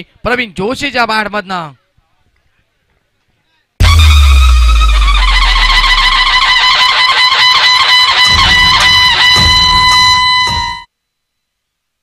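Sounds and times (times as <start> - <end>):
deep boom: 3.8 - 6.5
low rumbling: 3.8 - 6.6
fluttering high tone: 3.8 - 7.2.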